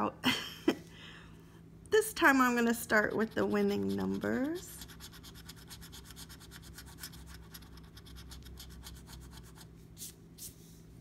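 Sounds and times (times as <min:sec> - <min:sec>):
coin scratching lottery ticket: 0:03.0 - 0:09.7.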